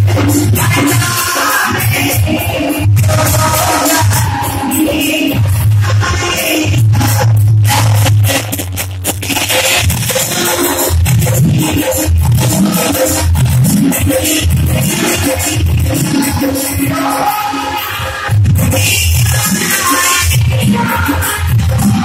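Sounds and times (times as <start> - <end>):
folk music with rapid percussion: 0.0 - 22.0.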